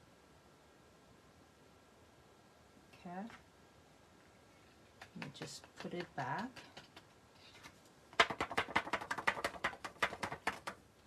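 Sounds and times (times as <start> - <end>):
cardstock tapping on plastic tub: 5.0 - 7.1, 8.2 - 10.8.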